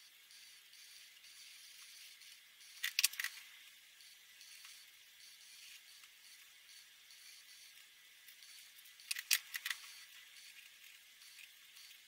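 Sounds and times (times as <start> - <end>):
sharp plastic clicks: 2.8 - 3.4, 9.0 - 9.9.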